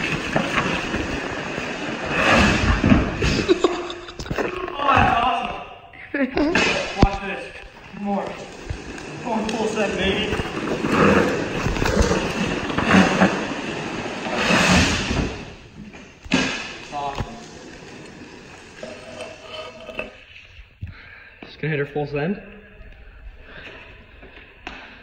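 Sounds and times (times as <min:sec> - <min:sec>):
trike wheels scraping on concrete: 0:00.0 - 0:05.4, 0:06.5 - 0:20.6.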